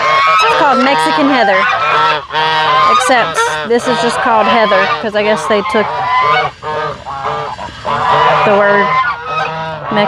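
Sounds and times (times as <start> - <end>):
geese honking: 0.0 - 10.0.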